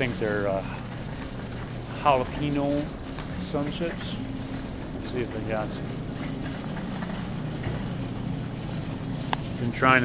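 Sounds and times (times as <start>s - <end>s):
low store background hum: 0.0s - 10.0s.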